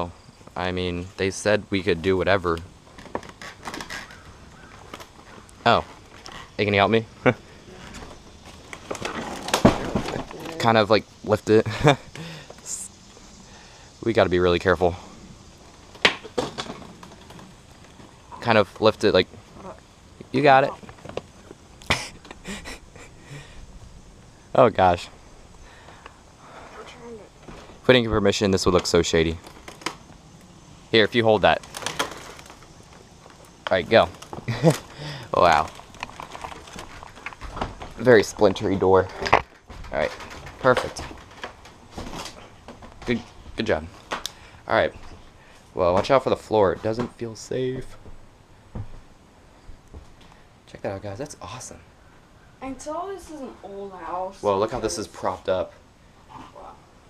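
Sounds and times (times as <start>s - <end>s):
wooden door scraping: 2.9s - 6.7s, 7.7s - 10.6s.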